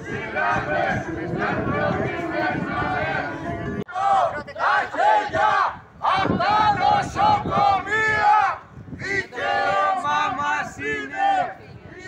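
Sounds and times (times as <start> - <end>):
crowd chanting in unison: 0.0 - 12.0.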